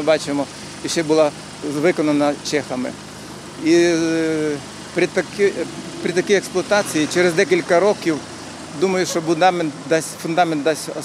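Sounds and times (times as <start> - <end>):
man speaking: 3.6 - 11.0.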